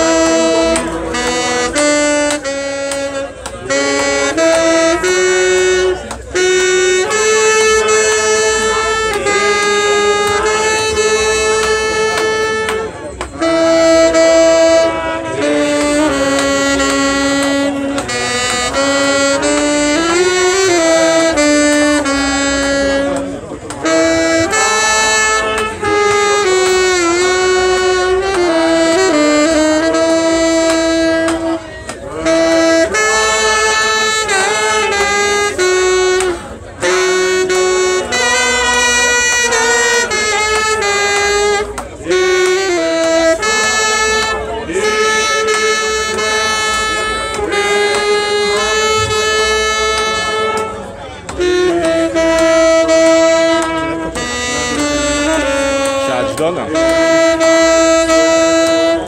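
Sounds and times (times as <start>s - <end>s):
saxophone slow melody: 0.0s - 59.0s.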